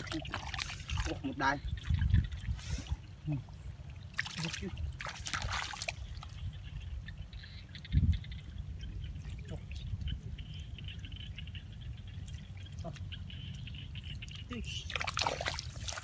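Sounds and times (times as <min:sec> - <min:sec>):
water splashing: 0:00.0 - 0:16.0
low steady rumble: 0:06.0 - 0:16.0
hands squelching in wet mud: 0:14.2 - 0:16.0.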